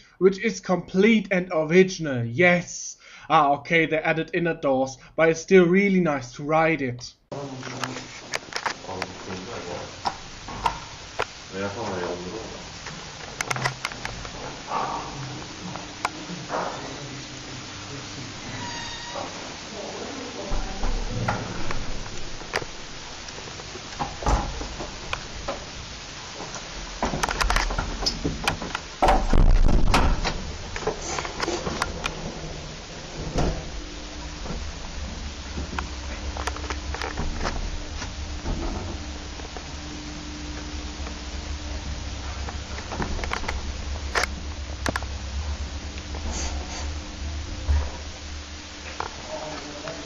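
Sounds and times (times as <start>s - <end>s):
lift motor humming: 7.8s - 50.0s
lift doors clunking and clattering: 20.5s - 39.1s.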